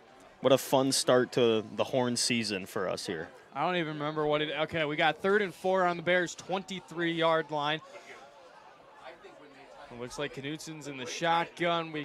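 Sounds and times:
faint background chatter: 0.0s - 12.0s.

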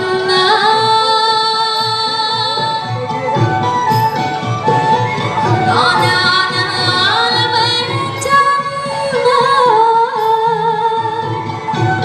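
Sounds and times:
woman singing: 0.0s - 3.0s, 5.6s - 11.8s
traditional ensemble playing: 0.0s - 12.0s.

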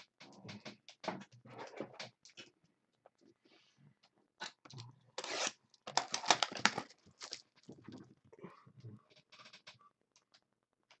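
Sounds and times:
plastic shrink wrap ripping: 4.6s - 7.7s
plastic wrap crinkling: 4.6s - 8.2s.

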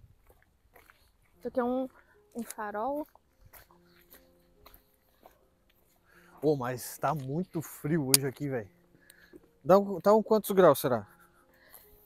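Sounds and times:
footsteps on cobblestones: 0.0s - 7.6s.

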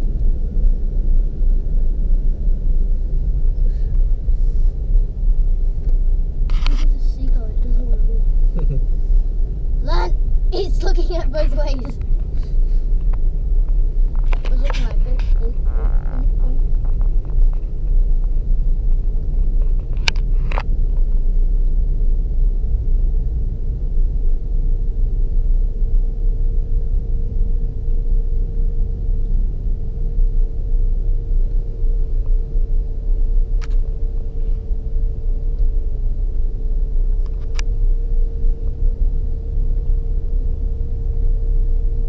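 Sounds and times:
engine and tyres rumbling: 0.0s - 42.0s
thin steady hum: 0.0s - 42.0s.

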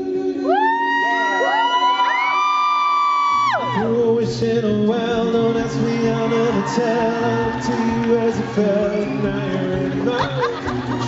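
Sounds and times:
men singing falsetto a cappella: 0.0s - 2.3s, 3.4s - 11.0s.

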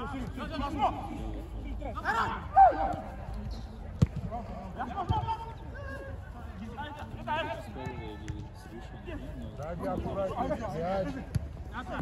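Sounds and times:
ball being kicked: 2.6s - 4.4s.

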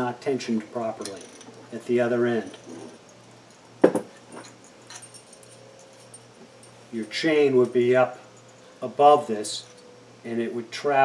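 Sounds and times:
light metal clinks: 1.0s - 8.8s.

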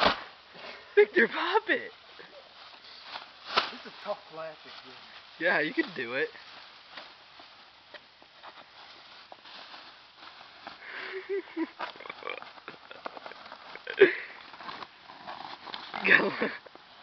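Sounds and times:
loud crack of bag bursting: 0.0s - 0.4s, 3.4s - 4.1s.

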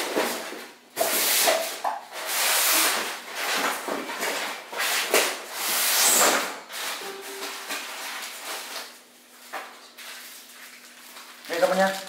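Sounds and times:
rustling handling noise: 7.0s - 12.0s.

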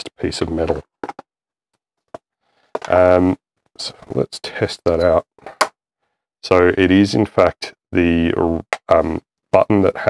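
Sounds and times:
man talking: 0.0s - 0.9s, 2.8s - 5.2s, 6.4s - 10.0s.

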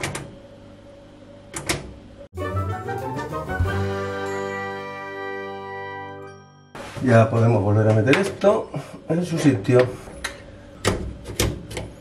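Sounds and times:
held musical chord: 2.3s - 6.8s.

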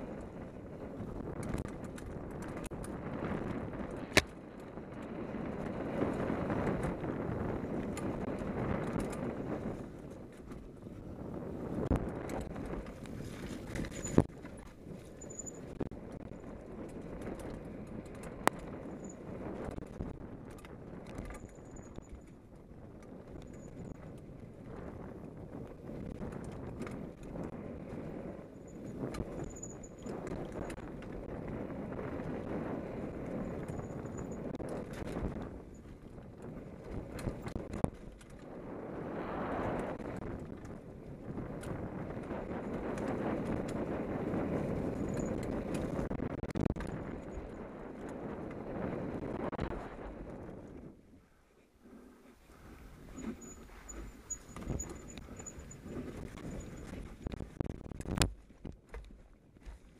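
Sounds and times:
bike tyres rolling over dirt and leaves: 0.0s - 33.8s
bike chain and frame rattling: 0.0s - 38.5s, 39.7s - 49.5s, 53.1s - 59.8s.

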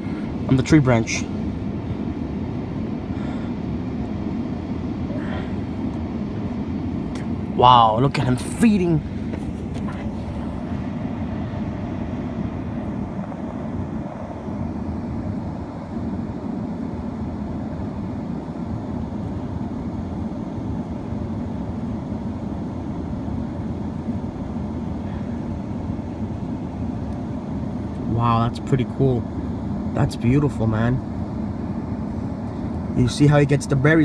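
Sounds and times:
vehicle engine idling: 0.0s - 34.0s.

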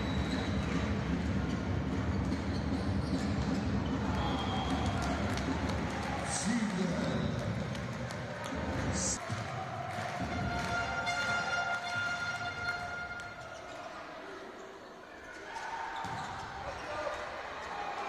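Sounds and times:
crowd noise: 0.0s - 18.0s.

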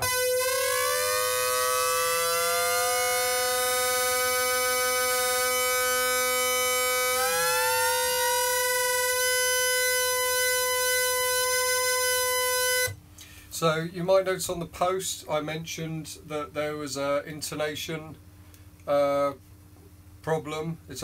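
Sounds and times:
synthesizer note with sliding pitch: 0.0s - 13.0s.

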